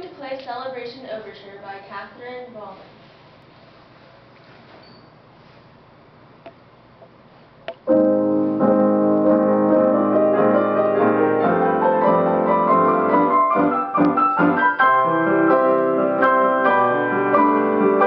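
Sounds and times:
piano duet: 7.8 - 18.0.

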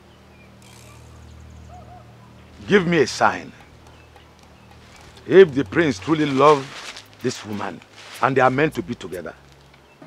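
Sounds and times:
steady low hum: 0.0 - 9.6
faint high ticking: 2.4 - 9.8.

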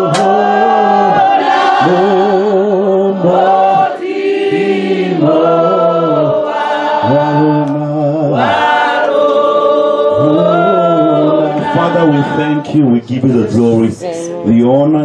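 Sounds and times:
man singing into a microphone: 0.0 - 4.0, 5.2 - 8.6, 10.1 - 13.6.

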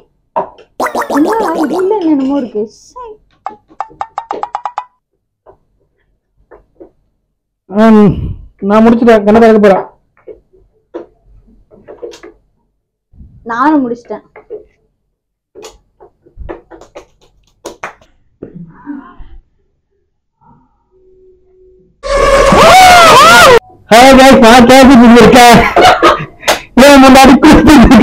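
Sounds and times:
loud hand claps: 16.5 - 18.1, 26.4 - 26.7
faint ringing tone: 20.6 - 22.0.

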